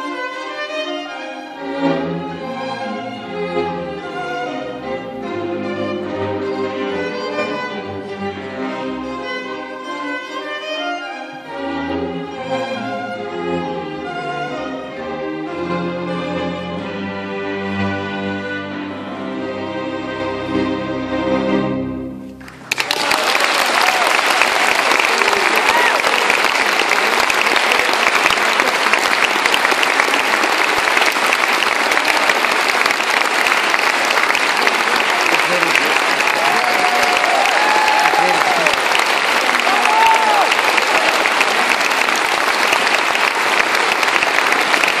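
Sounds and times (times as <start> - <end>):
audience applauding: 22.4 - 45.0.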